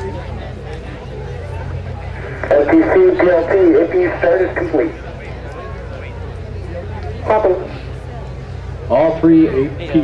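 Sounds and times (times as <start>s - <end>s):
steady low hum: 0.0s - 10.0s
person speaking loudly: 2.4s - 5.0s.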